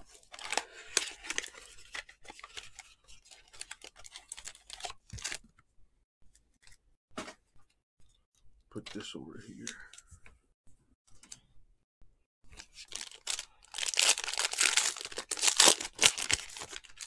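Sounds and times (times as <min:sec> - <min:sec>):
plastic shrink-wrap crinkling: 0:00.0 - 0:05.4, 0:12.5 - 0:17.0.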